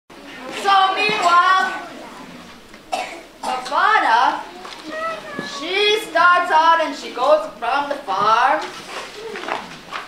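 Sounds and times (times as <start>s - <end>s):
children talking: 0.1s - 9.9s
short cough: 2.9s - 3.6s.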